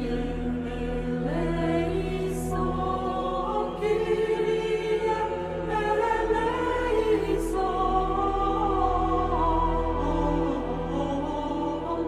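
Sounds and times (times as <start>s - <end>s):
choir singing slow chant: 0.0s - 12.0s.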